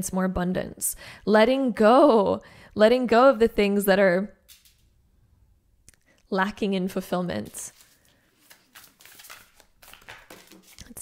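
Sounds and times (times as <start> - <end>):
cards shuffling: 7.4 - 11.0.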